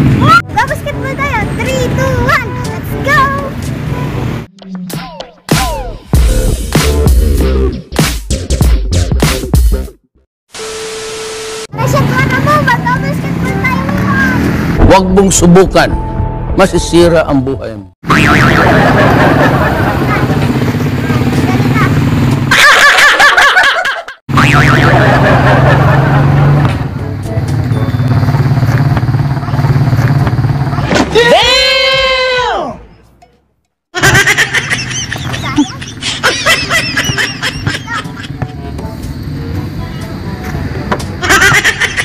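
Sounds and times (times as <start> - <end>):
loud laughter: 18.1 - 20.4, 22.5 - 26.6, 34.0 - 38.5, 41.2 - 42.0
engine humming: 18.1 - 22.5, 24.3 - 31.4
outdoor background noise: 18.1 - 42.0.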